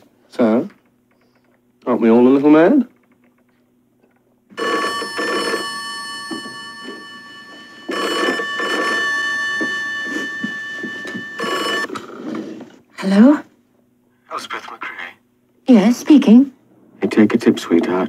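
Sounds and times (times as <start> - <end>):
telephone bell ringing: 4.5 - 11.9.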